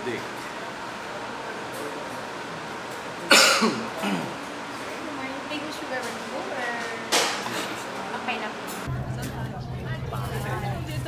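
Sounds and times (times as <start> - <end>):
loud cough: 3.3 - 4.4.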